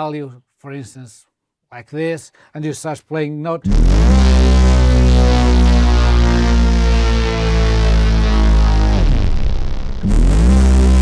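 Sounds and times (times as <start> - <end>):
synthesizer note gliding in pitch: 3.7 - 11.0.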